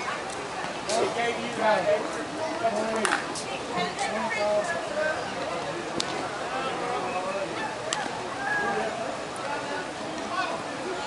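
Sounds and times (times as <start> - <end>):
players calling out and chattering: 0.0 - 11.0.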